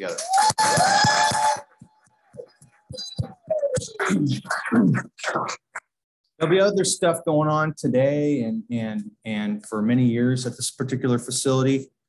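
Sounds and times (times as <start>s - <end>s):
whoops from audience: 0.2s - 1.6s.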